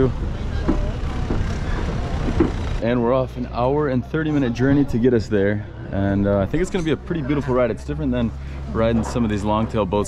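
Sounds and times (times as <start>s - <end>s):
boat engine rumbling: 0.0s - 10.0s
faint voices: 0.0s - 10.0s.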